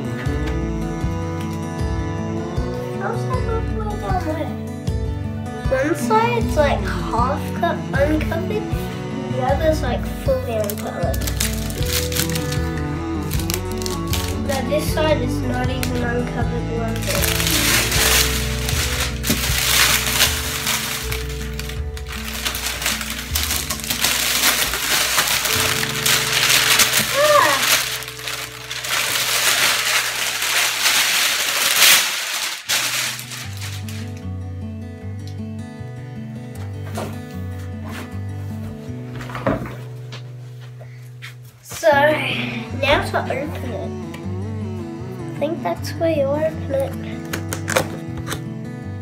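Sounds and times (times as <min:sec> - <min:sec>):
background music with bass line: 0:00.0 - 0:30.9, 0:32.6 - 0:49.0
plastic wrapping crinkling: 0:10.6 - 0:14.8, 0:17.0 - 0:34.2.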